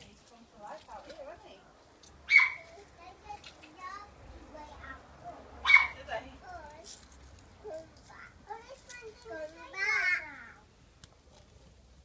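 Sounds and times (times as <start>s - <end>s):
drawn-out falling vocal call: 2.3s - 2.7s.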